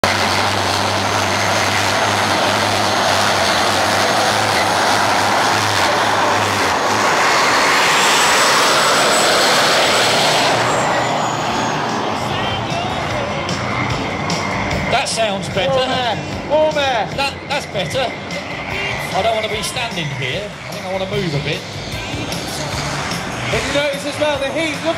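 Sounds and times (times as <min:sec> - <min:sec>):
jet engine roaring: 0:00.0 - 0:24.9.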